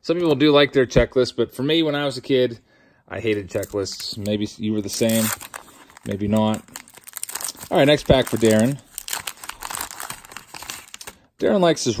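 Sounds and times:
wax paper wrapper crinkling: 3.4 - 11.3.

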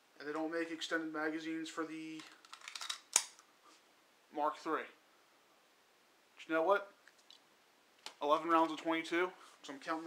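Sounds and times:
pistol handling rustle and scrape: 2.2 - 3.4.

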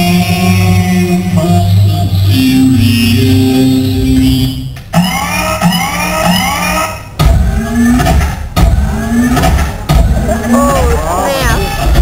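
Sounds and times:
heavy bass beats: 0.0 - 12.0
electronic dance music: 3.7 - 12.0.

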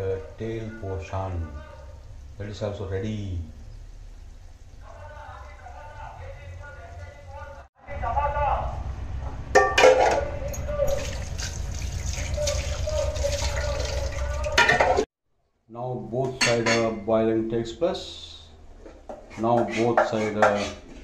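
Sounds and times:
low steady rumble: 1.7 - 14.5.

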